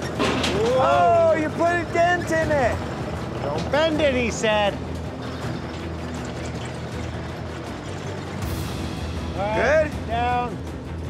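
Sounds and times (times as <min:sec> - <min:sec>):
background music: 0:00.0 - 0:11.0
diesel engine running: 0:00.0 - 0:11.0.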